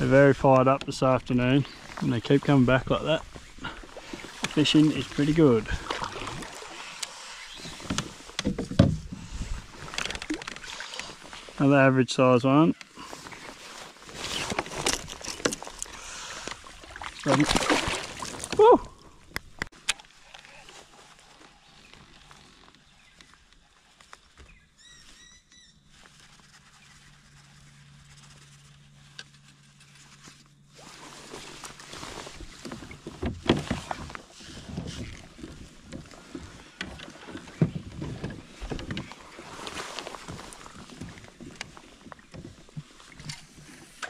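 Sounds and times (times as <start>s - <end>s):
water splashing against kayak hull: 0.0s - 11.6s, 12.8s - 20.9s, 30.7s - 44.0s
bird chirps: 24.4s - 25.8s.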